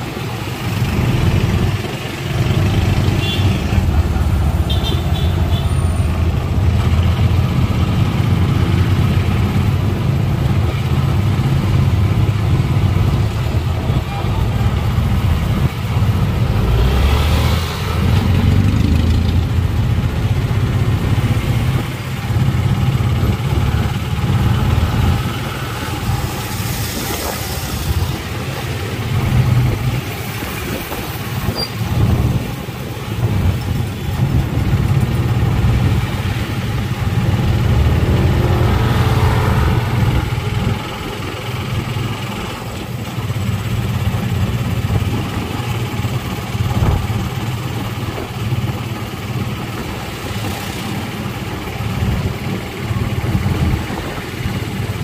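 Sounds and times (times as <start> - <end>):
motorcycle engine running: 0.0 - 55.0
motorcycles passing: 0.0 - 55.0.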